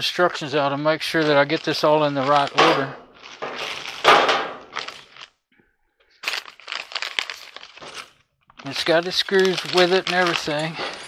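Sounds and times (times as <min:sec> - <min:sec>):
plastic bag and paper rustling: 0:01.0 - 0:05.3, 0:06.2 - 0:11.0.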